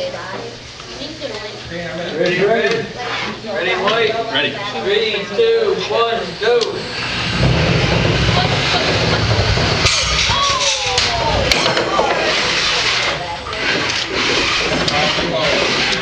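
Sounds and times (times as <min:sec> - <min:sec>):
spectators talking: 0:00.0 - 0:16.0
robot motors running: 0:06.0 - 0:16.0
low rumble: 0:06.3 - 0:14.9
sharp knocks of robots clashing: 0:07.3 - 0:15.1.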